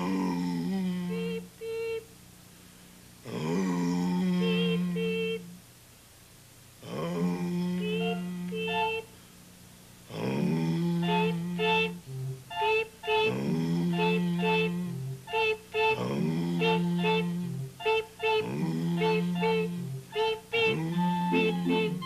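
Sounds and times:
puppet voice singing low notes: 0:00.0 - 0:02.1, 0:03.2 - 0:05.6, 0:06.8 - 0:09.1, 0:10.1 - 0:22.0
puppet voice beeping high notes: 0:04.4 - 0:05.5, 0:07.8 - 0:09.1, 0:11.0 - 0:22.0.

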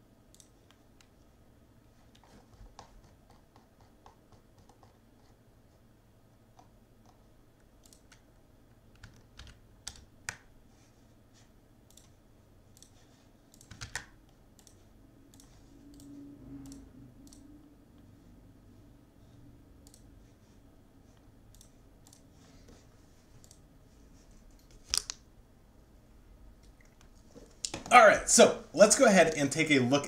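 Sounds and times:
computer keyboard typing clicks: 0:07.8 - 0:08.3, 0:08.9 - 0:10.5, 0:11.9 - 0:17.5, 0:19.8 - 0:20.1, 0:21.5 - 0:22.3.

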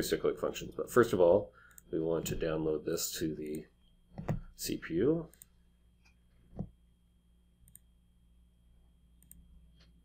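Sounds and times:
quiet mouse clicks: 0:05.3 - 0:06.7, 0:07.6 - 0:07.9, 0:09.2 - 0:10.0.

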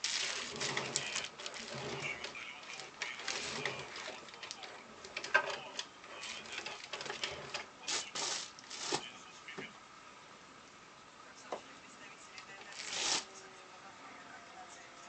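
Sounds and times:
mechanical whir: 0:00.0 - 0:09.1.

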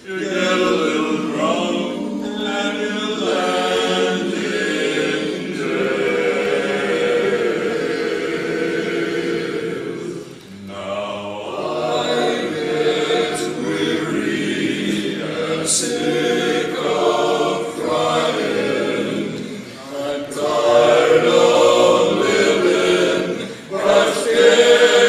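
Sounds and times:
men's chorus singing a cappella: 0:00.0 - 0:25.0.

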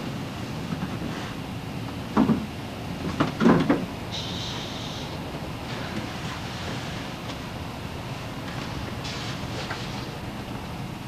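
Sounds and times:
steady background rumble: 0:00.0 - 0:11.0
scraping hiss: 0:04.1 - 0:07.2, 0:09.0 - 0:10.0.

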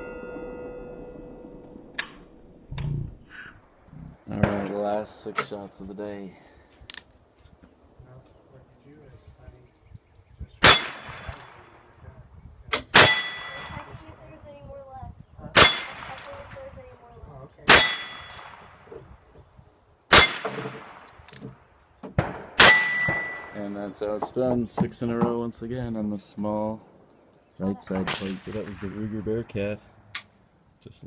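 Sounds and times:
bullet clanging on steel plate: 0:10.7 - 0:11.6, 0:12.8 - 0:13.8, 0:17.7 - 0:18.7, 0:22.6 - 0:23.6.

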